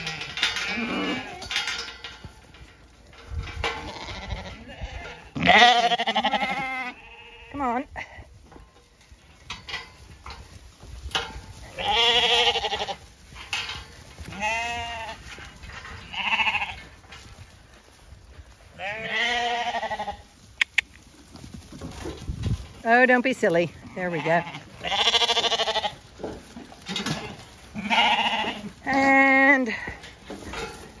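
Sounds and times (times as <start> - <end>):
lambs bleating: 0.0 - 1.5, 3.8 - 7.8, 11.6 - 13.0, 14.3 - 15.2, 16.0 - 16.8, 18.8 - 20.3, 23.8 - 26.0, 27.1 - 30.0
sharp clicks: 20.6 - 21.0.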